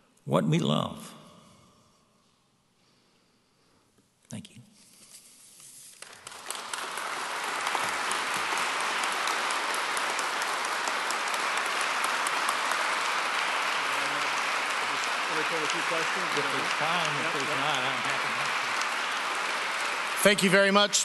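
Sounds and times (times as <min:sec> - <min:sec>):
audience applauding: 0:05.9 - 0:21.0.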